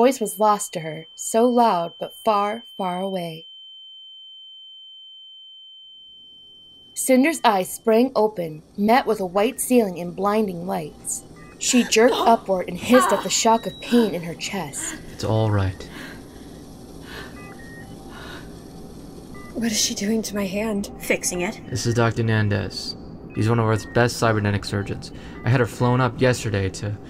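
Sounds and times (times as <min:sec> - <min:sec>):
patient monitor beeps: 0:00.0 - 0:03.4, 0:06.8 - 0:27.0
high-pitched sine tone: 0:00.0 - 0:27.0.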